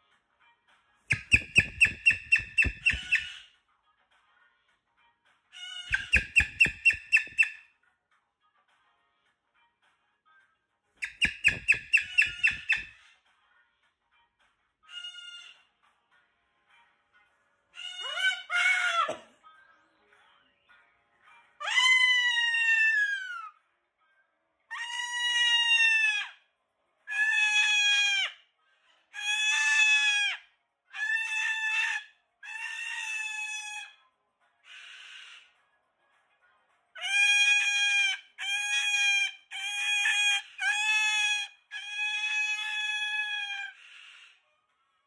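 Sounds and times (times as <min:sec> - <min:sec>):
cockatoo screaming: 0:17.8 - 0:19.2, 0:21.6 - 0:23.5, 0:24.7 - 0:26.4, 0:27.1 - 0:28.4, 0:29.2 - 0:33.9, 0:37.0 - 0:43.9.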